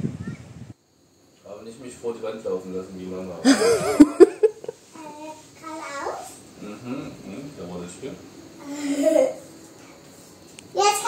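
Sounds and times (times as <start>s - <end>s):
low voices murmuring: 6.5s - 9.5s.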